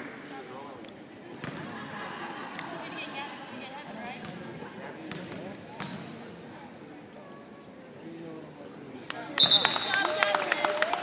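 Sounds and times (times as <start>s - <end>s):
murmur of voices: 0.0s - 11.0s.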